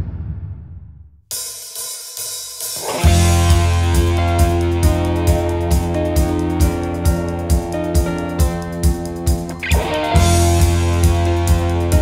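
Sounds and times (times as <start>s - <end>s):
cymbals and hi-hat ringing: 1.3s - 5.0s.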